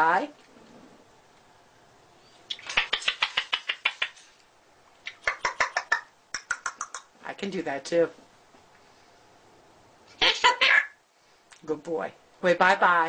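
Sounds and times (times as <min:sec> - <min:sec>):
cockatoo clicking chatter: 0:02.5 - 0:04.3, 0:05.0 - 0:07.1.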